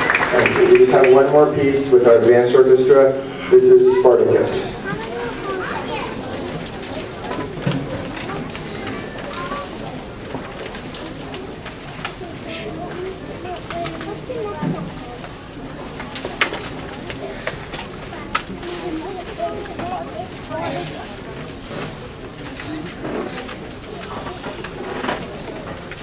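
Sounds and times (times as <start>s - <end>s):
murmur of seated audience: 0.0s - 26.0s.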